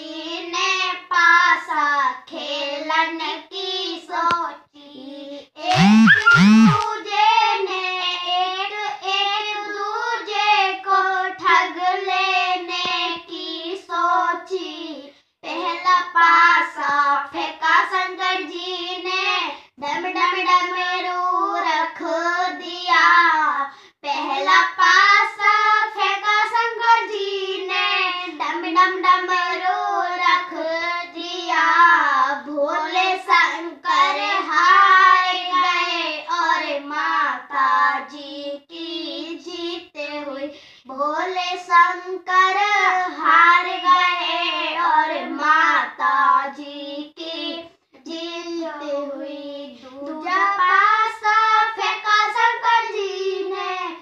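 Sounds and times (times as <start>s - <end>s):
girls singing unaccompanied: 0.0s - 5.4s, 6.9s - 40.5s, 41.1s - 54.0s
singers breathing: 40.5s - 40.9s.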